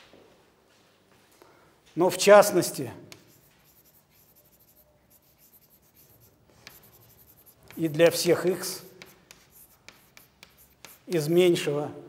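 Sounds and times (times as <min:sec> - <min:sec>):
chalk scratching on blackboard: 0:03.1 - 0:11.5.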